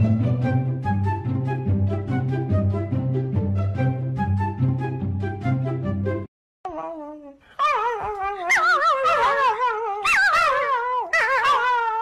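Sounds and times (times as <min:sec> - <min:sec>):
puppy howling and whining: 0:06.7 - 0:12.0.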